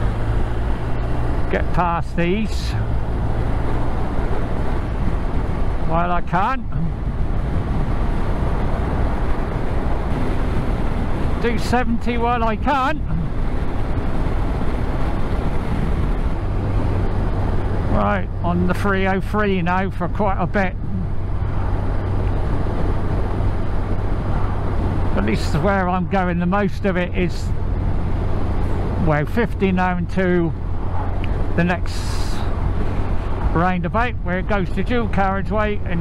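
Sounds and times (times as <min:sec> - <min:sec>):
motorcycle engine rumble: 0:00.0 - 0:36.0
wind rush: 0:00.0 - 0:36.0.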